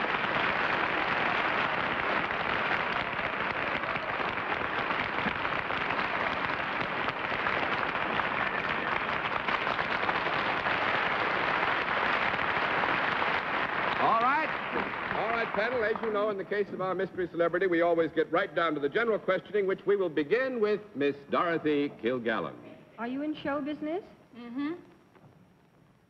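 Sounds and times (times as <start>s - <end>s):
audience applauding: 0.0s - 17.9s.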